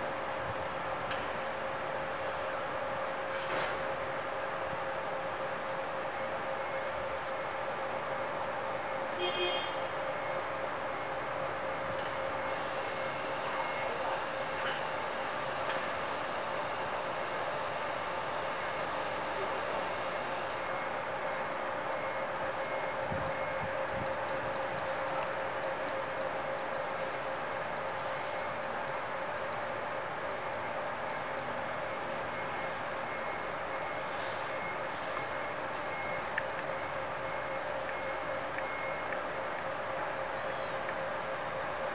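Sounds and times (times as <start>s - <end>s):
steady mechanical hum: 0.0s - 41.9s.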